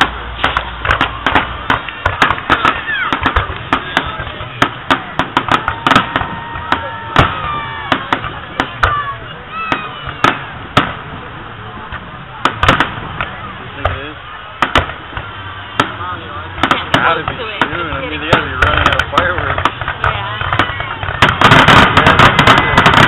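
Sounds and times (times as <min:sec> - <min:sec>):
fireworks bursts: 0:00.0 - 0:23.0
fireworks whistling: 0:00.0 - 0:23.0.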